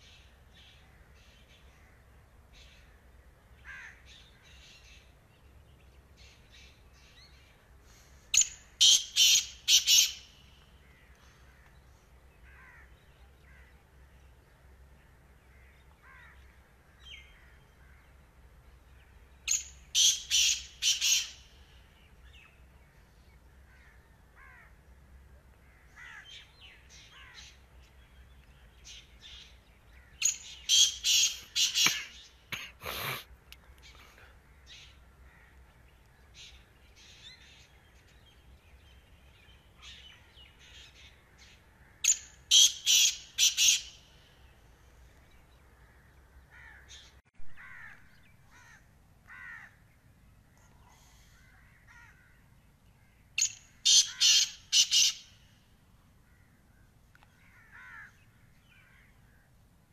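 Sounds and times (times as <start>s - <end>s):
loud bird calls: 6.2s - 13.8s, 19.4s - 22.0s, 25.7s - 27.7s, 28.8s - 33.2s, 39.8s - 44.5s, 50.7s - 55.6s, 56.3s - 59.4s.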